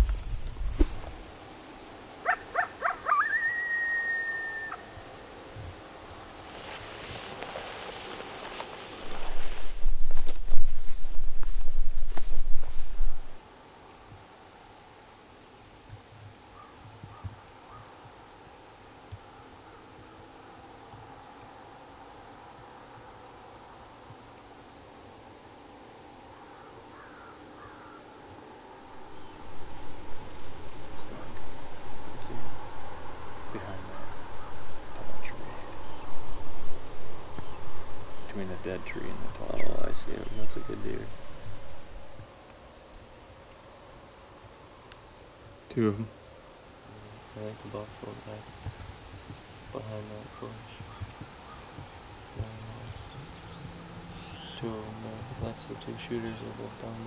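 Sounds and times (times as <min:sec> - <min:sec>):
insects chirring: 0:00.0 - 0:15.7, 0:16.5 - 0:57.0
wild animal yipping and calling: 0:02.2 - 0:05.0.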